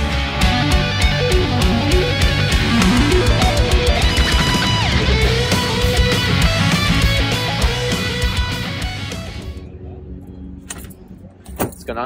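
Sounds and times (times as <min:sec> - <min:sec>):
rock music: 0:00.0 - 0:09.6.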